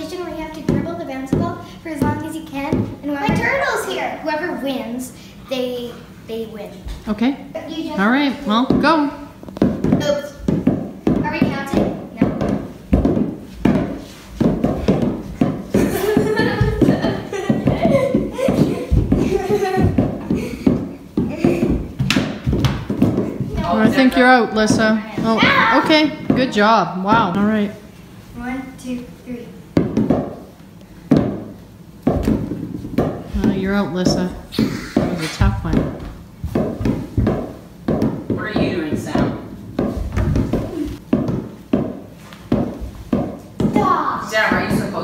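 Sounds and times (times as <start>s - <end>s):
balls bouncing on wooden floor: 0.0s - 3.8s, 6.8s - 27.9s, 29.7s - 45.0s.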